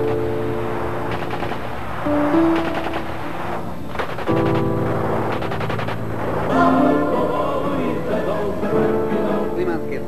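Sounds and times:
rapid automatic gunfire: 0.8 - 6.7.

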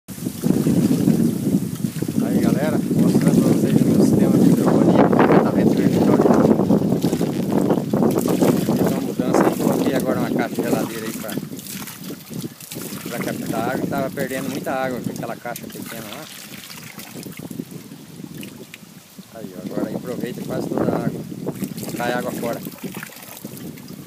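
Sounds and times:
wind buffeting microphone: 0.1 - 24.0.

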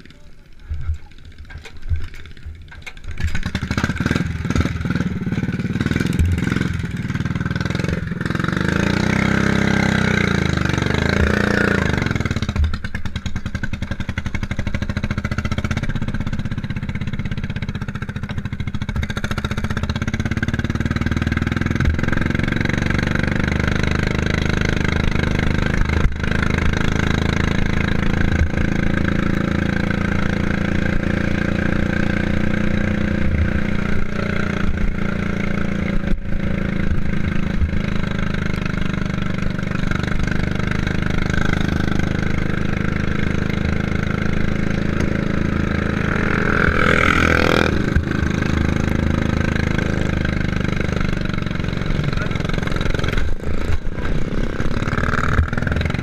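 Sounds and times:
lawnmower engine running: 0.0 - 56.0.

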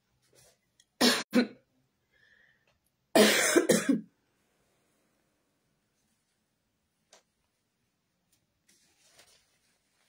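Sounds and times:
woman coughing: 1.0 - 1.6, 3.2 - 4.1.

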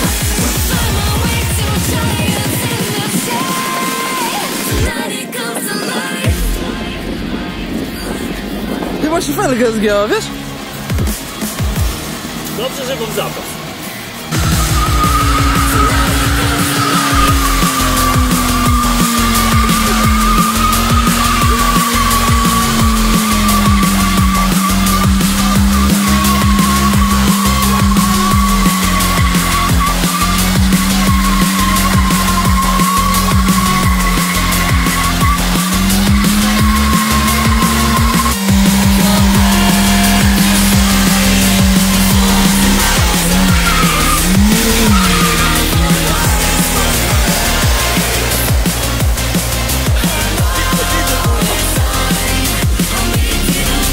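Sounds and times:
electronic music with beat: 0.0 - 53.9
car engine at high revs: 6.3 - 53.9
tyre squeal: 14.3 - 53.0.

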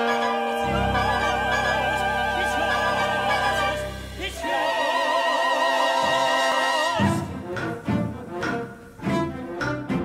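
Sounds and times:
low bowed strings staccato: 7.0 - 10.0.

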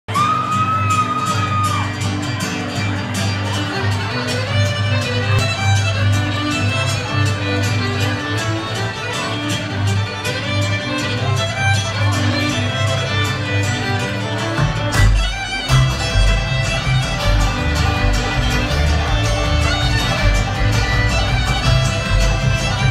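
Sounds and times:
fiddle: 0.1 - 22.9
guitar: 0.1 - 22.9
banjo: 1.2 - 22.9
upright bass: 14.4 - 22.9.

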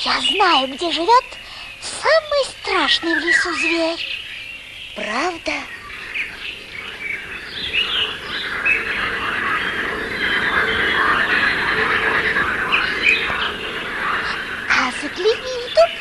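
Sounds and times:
many birds chirping and squawking: 0.0 - 16.0.

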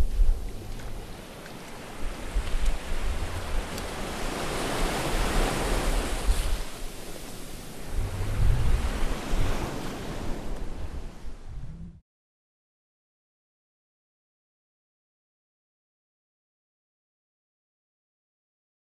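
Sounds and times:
deep rumbles: 0.0 - 1.3, 7.8 - 9.5, 11.4 - 12.0
sea surf washing in: 0.0 - 12.0.

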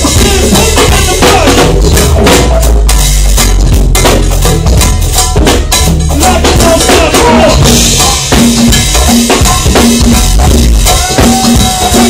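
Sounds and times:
drum kit beating: 0.0 - 12.0
live band playing: 0.0 - 12.0
sustained low bass line: 0.0 - 12.0.

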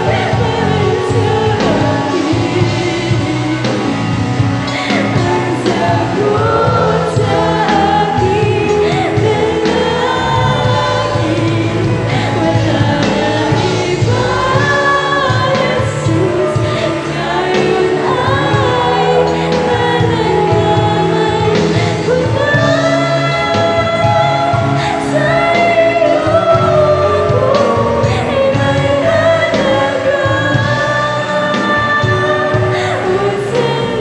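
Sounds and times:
choir singing gospel song: 0.0 - 34.0
musical accompaniment: 0.0 - 34.0.

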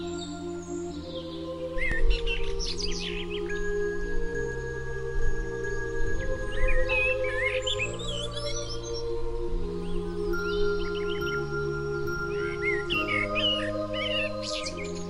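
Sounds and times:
ambient music with sustained chords: 0.0 - 15.0
birds chirping: 0.0 - 15.0.

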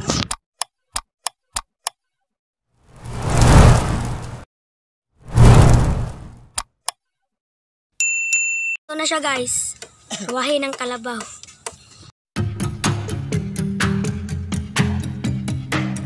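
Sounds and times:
rushes of noise: 3.0 - 4.4, 5.3 - 6.4.

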